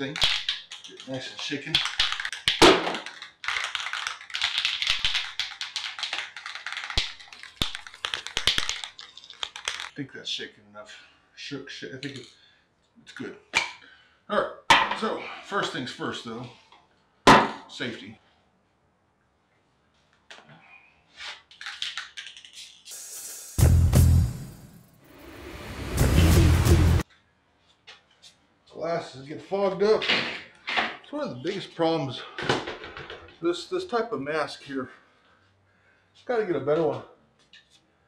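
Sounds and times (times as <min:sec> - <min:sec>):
spray paint can rattling: 0:00.0 - 0:09.9, 0:21.5 - 0:23.7
small clicks and rustles: 0:00.5 - 0:10.0
spray paint can hissing: 0:22.2 - 0:24.9.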